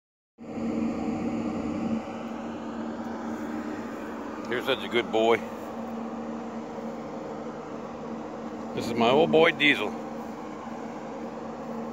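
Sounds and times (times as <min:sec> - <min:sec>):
mechanical drone with low hum: 0:00.4 - 0:11.9.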